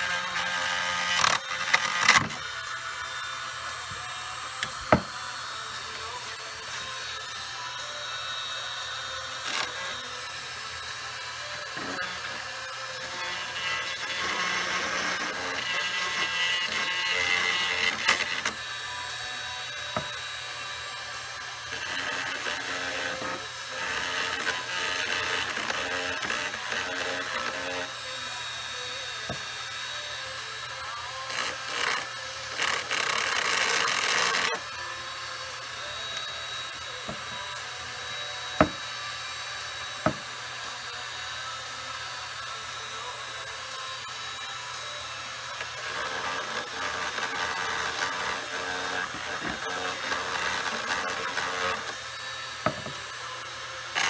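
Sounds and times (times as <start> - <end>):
rotary tool grinding metal: 0.0 - 54.0.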